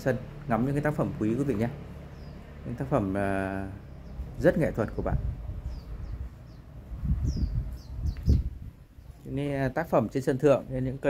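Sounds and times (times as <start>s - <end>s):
small bird chirping: 1.3s - 9.4s.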